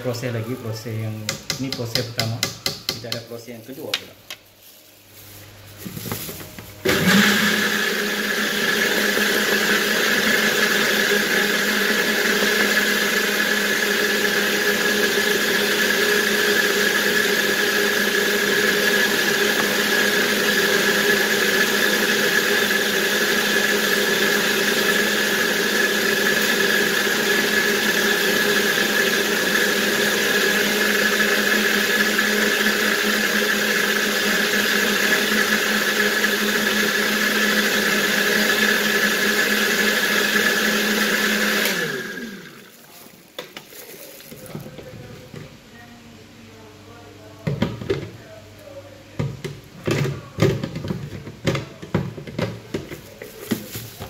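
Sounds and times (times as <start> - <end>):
blender motor running: 6.8 - 42.9.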